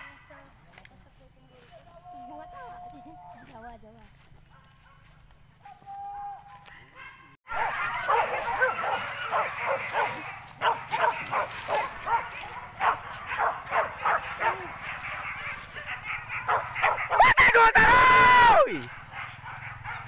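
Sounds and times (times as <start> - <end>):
dogs yelping and barking: 1.9 - 3.5, 4.4 - 20.0.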